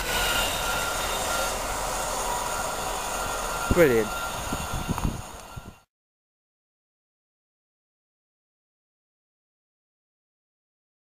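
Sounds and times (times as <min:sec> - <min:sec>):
freight train rumbling: 0:00.0 - 0:05.9.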